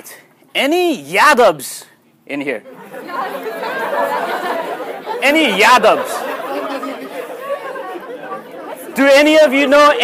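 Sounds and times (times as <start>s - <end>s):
students talking and murmuring: 2.6s - 10.0s.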